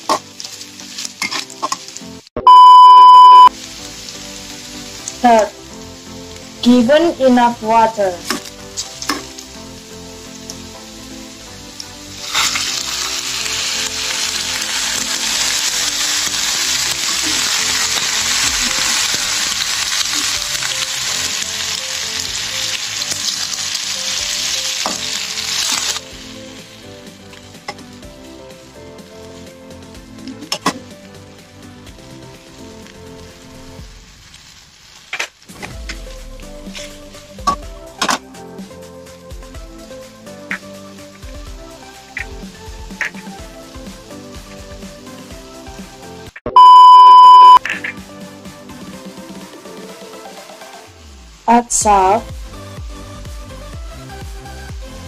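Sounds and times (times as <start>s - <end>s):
vegetables sizzling in wok: 0.0s - 46.3s.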